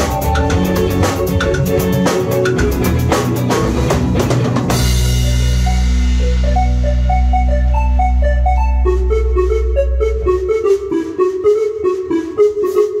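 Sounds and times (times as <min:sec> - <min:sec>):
electronic keyboard notes: 0:00.0 - 0:13.0.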